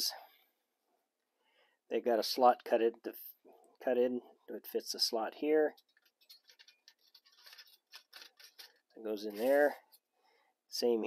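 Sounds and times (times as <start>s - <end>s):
thin sheet metal ticks and scrapes: 5.7s - 9.8s.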